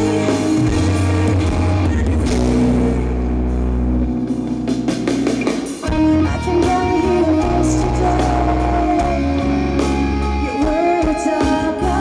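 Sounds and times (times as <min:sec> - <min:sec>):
drums: 0:00.0 - 0:12.0
electric guitar: 0:00.0 - 0:12.0.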